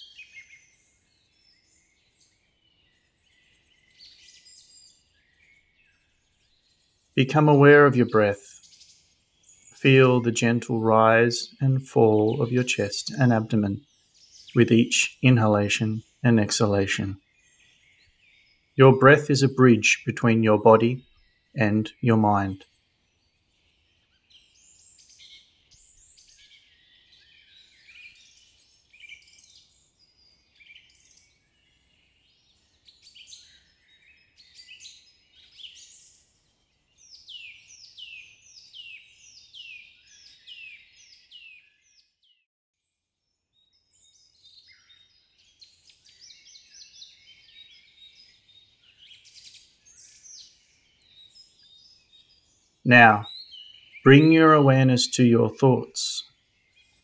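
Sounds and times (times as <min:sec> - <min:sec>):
songbirds chirping and singing: 0:00.0 - 0:42.1, 0:43.8 - 0:57.0.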